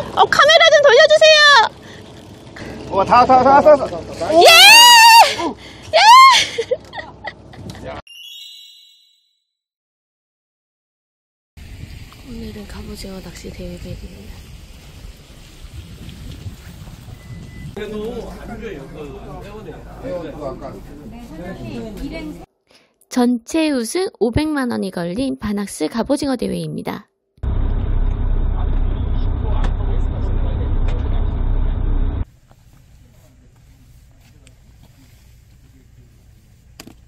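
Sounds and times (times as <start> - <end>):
rain on pavement and cars: 11.6 - 18.4
low rumble: 27.4 - 32.2.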